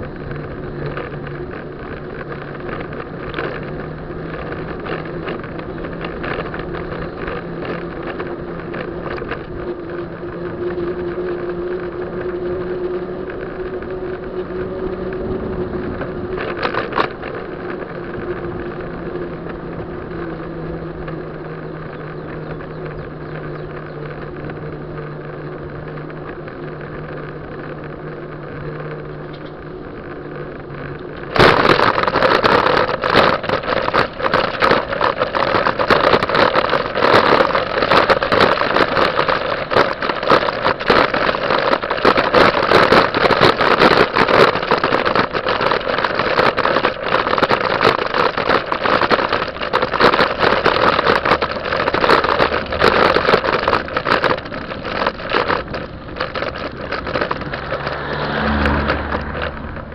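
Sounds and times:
bicycle clatter: 0.0s - 59.9s
bicycle rattling over bumps: 0.0s - 59.9s
bicycle tyres humming on road: 0.0s - 59.9s.

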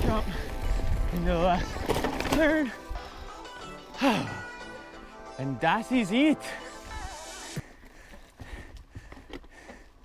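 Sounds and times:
bike clicks and rattles: 0.0s - 3.2s, 7.6s - 10.0s
bike rolling on dirt trail: 0.0s - 4.0s, 6.8s - 10.0s.

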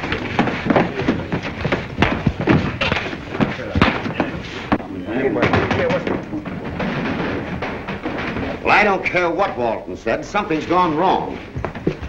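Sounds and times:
bodies hitting the floor: 0.0s - 9.0s
thuds of blows: 0.0s - 9.6s.

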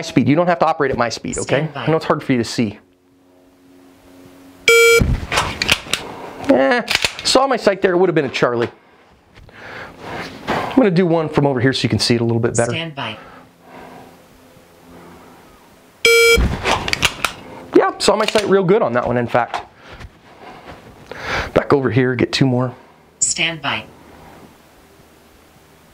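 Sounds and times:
faint steady hum: 0.0s - 25.9s
loud electronic beep: 4.7s - 5.1s, 16.0s - 16.4s
pistol drawn from holster: 5.3s - 6.0s, 6.9s - 7.3s, 16.4s - 17.4s.

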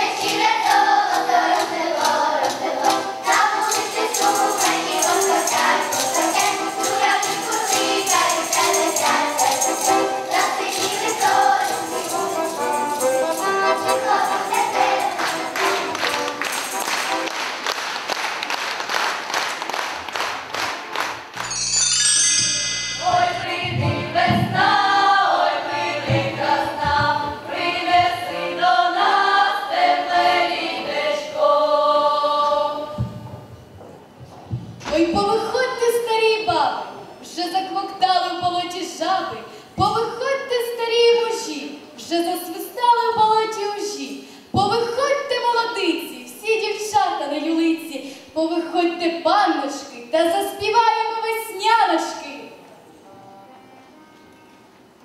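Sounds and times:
children's choir singing folk song: 0.0s - 20.8s, 22.9s - 33.4s.

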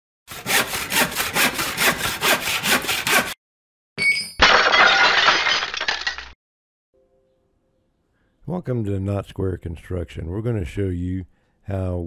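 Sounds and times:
hand saw cutting wood: 0.3s - 3.4s
loud shattering crash: 4.4s - 6.4s.

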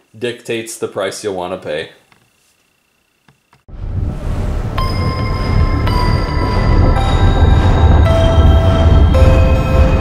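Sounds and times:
heavy low rumble: 3.7s - 10.0s
high held tones: 4.4s - 10.0s.

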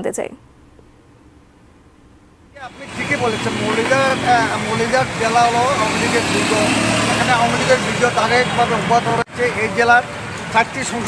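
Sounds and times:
street traffic noise: 2.4s - 11.0s
man's voice: 2.6s - 11.0s.

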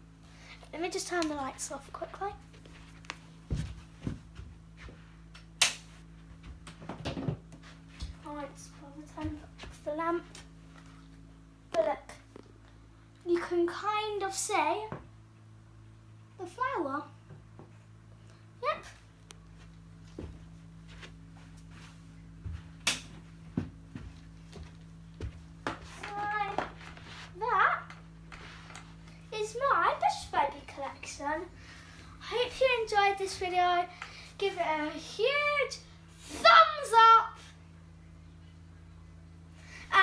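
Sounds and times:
low steady hum: 0.0s - 40.0s.

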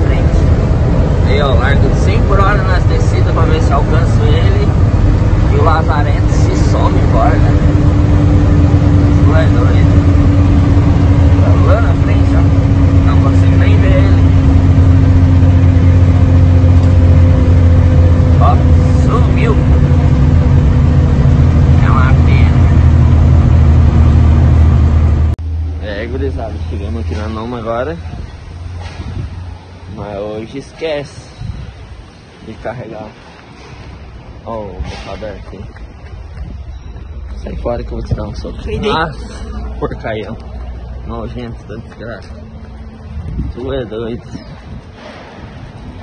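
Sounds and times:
road noise: 0.0s - 46.0s
truck diesel engine drone: 0.0s - 46.0s.

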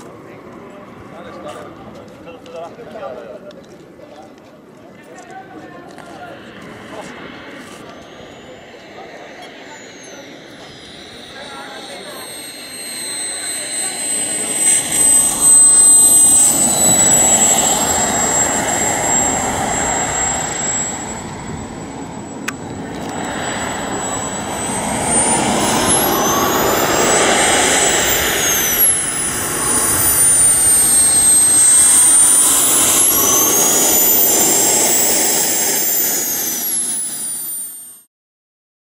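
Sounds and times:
model jet turbine whining: 5.1s - 38.1s.

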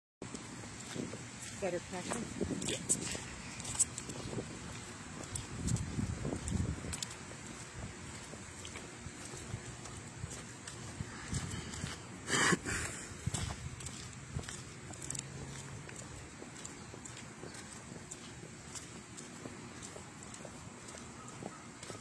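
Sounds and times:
footsteps on asphalt and brick: 0.2s - 22.0s.

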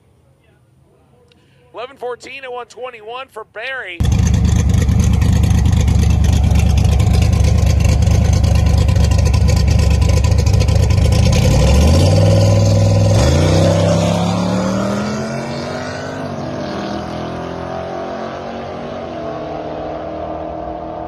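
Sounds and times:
car engine revving and accelerating: 4.0s - 21.0s.

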